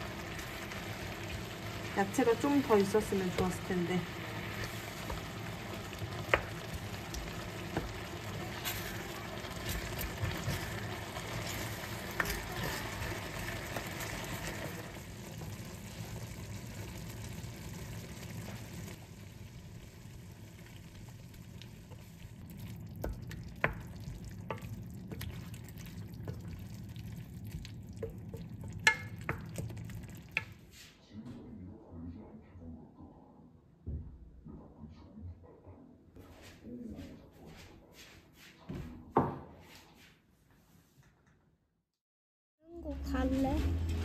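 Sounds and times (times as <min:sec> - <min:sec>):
wooden spoon stirring: 0:00.0 - 0:16.3, 0:21.4 - 0:30.8
food sizzling in a pan: 0:00.0 - 0:30.9
spoon knocking against pan: 0:28.0 - 0:30.6.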